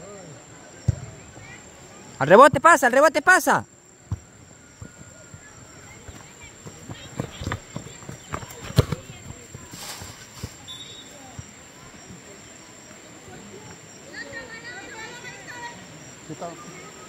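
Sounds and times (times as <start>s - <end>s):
running footsteps on grass: 4.2s - 12.3s.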